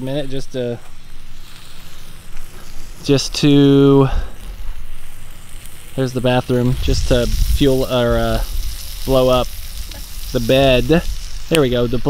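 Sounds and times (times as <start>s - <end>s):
food sizzling on a grill: 0.0s - 12.0s
low rumble: 6.4s - 11.5s.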